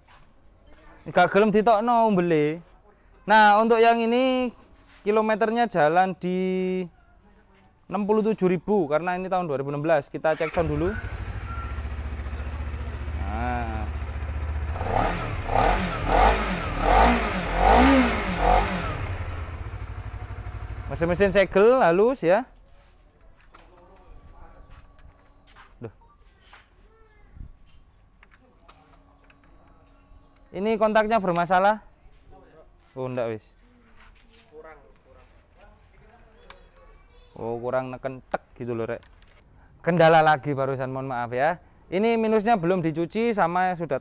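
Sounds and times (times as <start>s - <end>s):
engine throttle blips: 10.4s - 21.3s
motorcycle engine idling: 10.5s - 21.6s.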